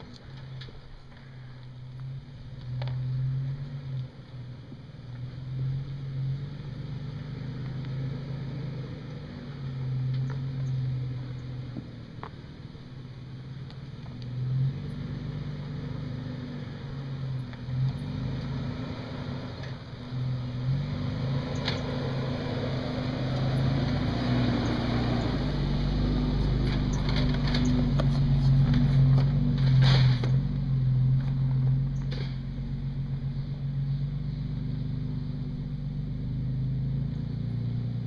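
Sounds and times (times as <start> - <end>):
truck engine at low speed: 0.0 - 38.0
tyres crunching over gravel: 21.5 - 33.8.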